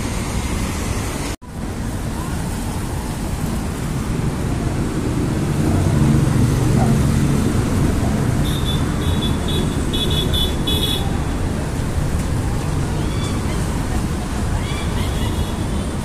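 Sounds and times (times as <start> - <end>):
road traffic rumble: 0.0 - 16.0
vehicle passing: 3.2 - 16.0.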